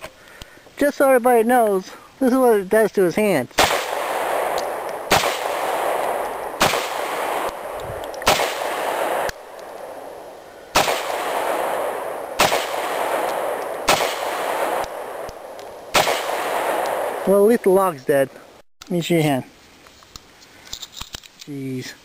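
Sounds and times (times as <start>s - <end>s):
pistol shots: 3.6s - 17.3s.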